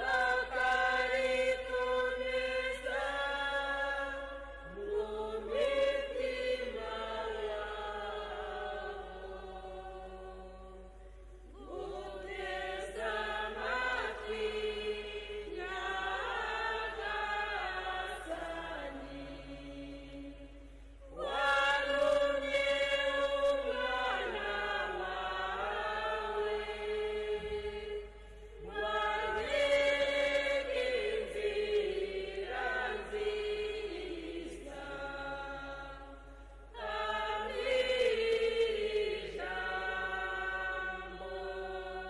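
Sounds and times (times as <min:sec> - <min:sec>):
choir singing chant: 0:00.0 - 0:42.0.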